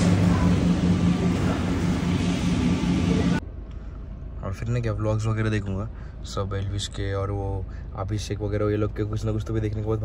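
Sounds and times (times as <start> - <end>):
fast-food restaurant ambience: 0.0 - 3.4
low mechanical hum: 0.0 - 4.8.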